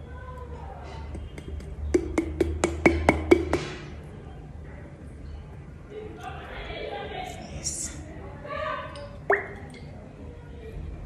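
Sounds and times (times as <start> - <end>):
fingertip taps on glass bottle: 1.4 - 3.7.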